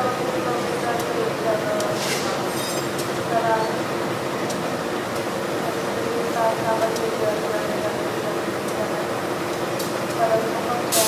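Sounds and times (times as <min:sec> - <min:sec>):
railway coaches rolling on track: 0:00.0 - 0:11.0.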